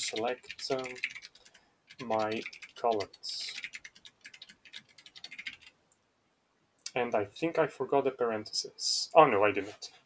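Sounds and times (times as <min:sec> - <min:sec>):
computer keyboard typing: 0:00.0 - 0:05.7.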